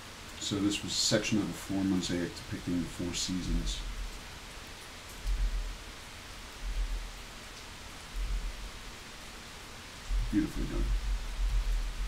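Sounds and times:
steady background hiss: 0.0 - 12.0
soft low thumps: 5.3 - 5.8, 6.6 - 7.2, 8.1 - 8.8, 10.1 - 12.0.

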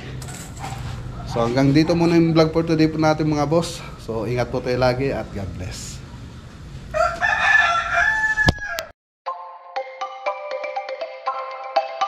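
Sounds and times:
rooster crowing: 6.9 - 8.9
music: 9.3 - 12.0.

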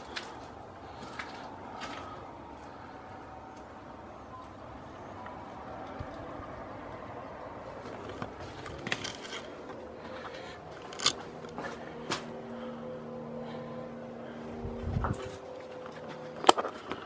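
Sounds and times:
crunches and scrapes: 7.9 - 11.7.

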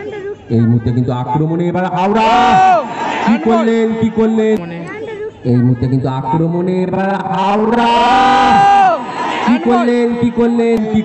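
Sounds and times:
commentator speaking: 0.5 - 8.8, 9.4 - 11.0
man shouting excitedly: 1.9 - 3.9, 7.4 - 10.3.

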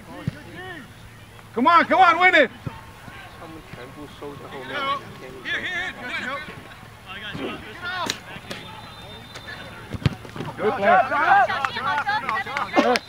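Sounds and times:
distant players shouting: 0.0 - 13.0
ball being kicked: 9.8 - 10.6.

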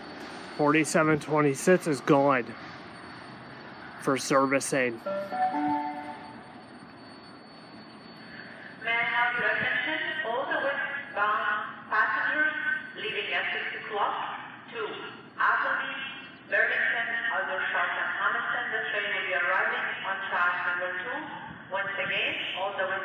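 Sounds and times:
public address chime: 0.6 - 2.5, 4.0 - 11.5
tinny loudspeaker announcement: 4.0 - 6.3, 8.8 - 23.0.

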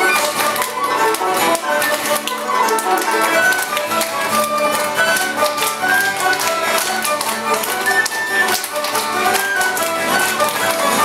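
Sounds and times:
folk dance tune: 0.0 - 11.0
people clapping along: 0.0 - 11.0.

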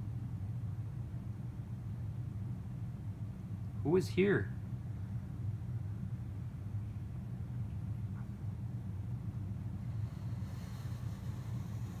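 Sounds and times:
low rumbling hum: 0.0 - 12.0
faint hiss: 9.6 - 12.0.

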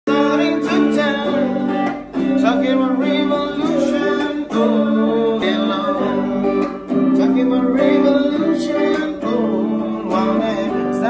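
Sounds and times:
guitar chords: 0.1 - 11.0
man singing: 0.1 - 11.0.

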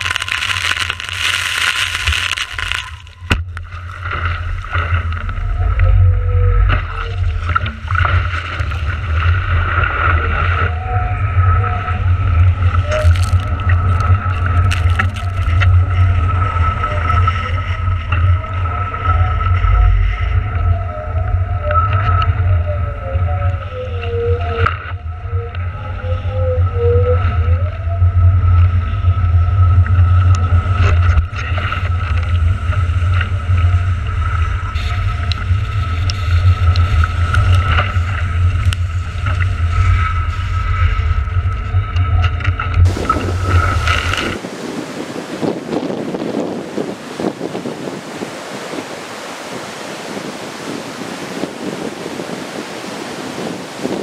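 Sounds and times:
water rushing past board: 0.0 - 25.4, 26.0 - 54.0
steady high whine: 0.0 - 46.0
water splashes: 0.0 - 54.0
wind buffeting microphone: 0.0 - 54.0.

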